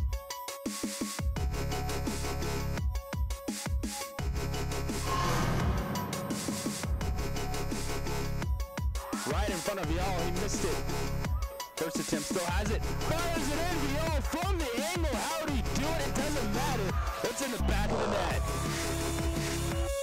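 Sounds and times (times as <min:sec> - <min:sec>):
electronic music with heavy bass: 0:00.0 - 0:20.0
rising whoosh: 0:04.9 - 0:07.9.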